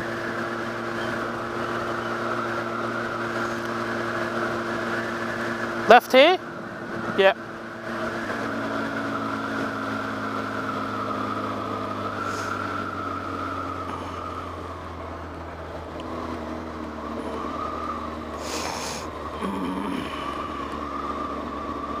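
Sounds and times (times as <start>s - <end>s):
motorcycle engine running: 0.0s - 22.0s
wind and road noise: 0.0s - 22.0s.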